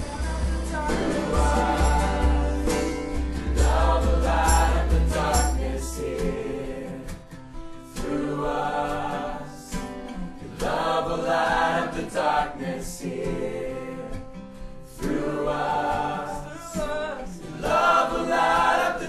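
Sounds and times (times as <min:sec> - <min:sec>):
group singing worship song: 0:00.0 - 0:19.0.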